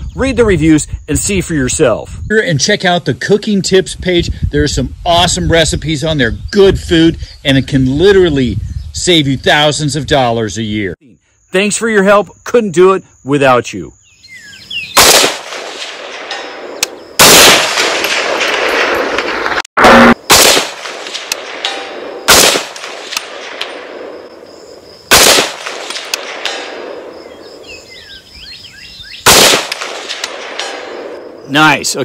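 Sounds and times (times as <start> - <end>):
rifle shots: 14.9 - 24.1, 25.1 - 27.1, 29.2 - 31.2
rolling echo of gunshots: 15.0 - 24.3, 25.1 - 27.5, 29.2 - 31.2.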